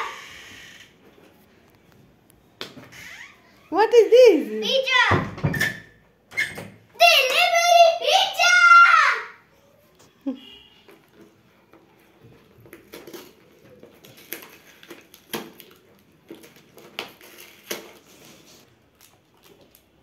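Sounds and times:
child's voice: 3.8 - 5.3, 7.0 - 9.5.

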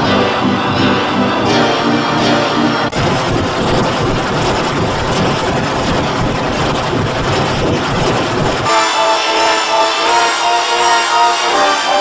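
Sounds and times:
distorted roar: 0.0 - 12.0.

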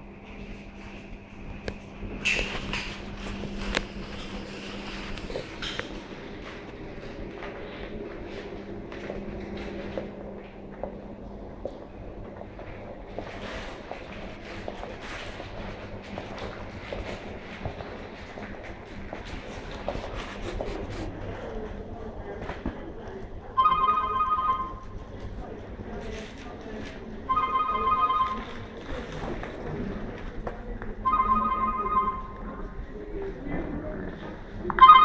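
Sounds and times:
steady low hum: 0.0 - 35.0
telephone ringing: 23.6 - 24.9, 27.3 - 28.8, 31.0 - 32.6, 34.8 - 35.0.

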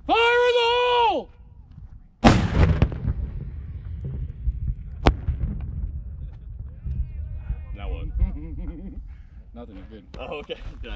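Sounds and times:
low wind rumble on microphone: 1.6 - 9.5
sharp crack: 2.2 - 6.4.

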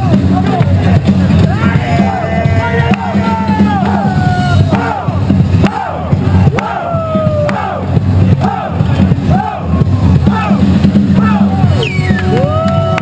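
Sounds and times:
breakbeat music over sound system: 0.0 - 13.0
crowd shouting and cheering: 0.0 - 13.0.

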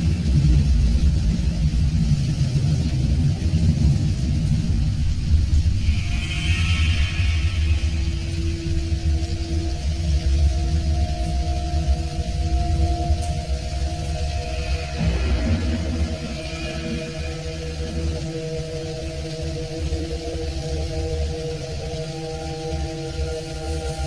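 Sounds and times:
dark ambient drone music: 0.0 - 24.0.

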